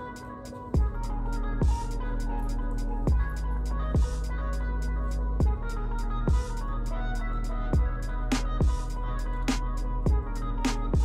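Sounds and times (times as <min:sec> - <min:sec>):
hi-hat ticks: 0:00.1 - 0:11.0
low bass line: 0:00.8 - 0:11.0
deep falling bass hits: 0:03.1 - 0:04.3, 0:05.4 - 0:06.7, 0:07.7 - 0:11.0.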